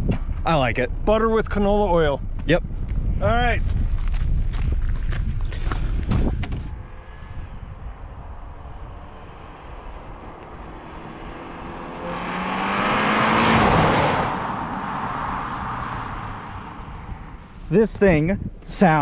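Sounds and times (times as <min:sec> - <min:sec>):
car driving past: 0:06.2 - 0:17.7.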